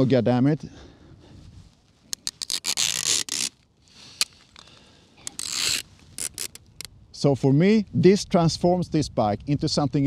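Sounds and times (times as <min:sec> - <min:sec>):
zipper clicks: 0:02.1 - 0:03.6, 0:05.2 - 0:06.9
zipper rasping pulls: 0:02.1 - 0:03.6, 0:05.2 - 0:06.9.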